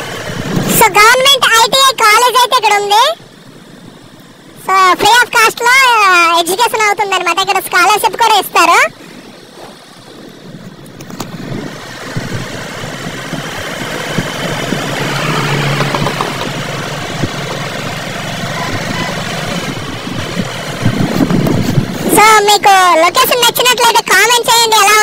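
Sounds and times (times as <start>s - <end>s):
motorcycle engine running: 8.9s - 23.0s
wind on microphone: 9.4s - 22.7s.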